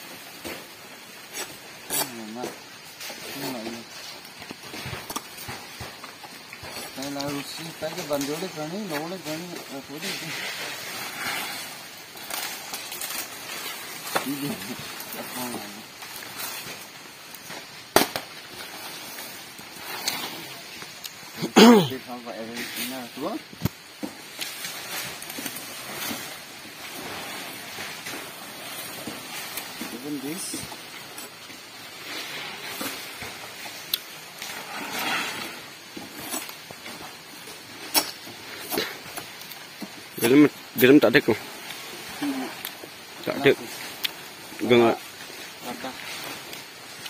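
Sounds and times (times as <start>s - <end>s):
rustling of undergrowth: 0.0s - 47.0s
machete chopping palm stalk: 17.9s - 18.3s.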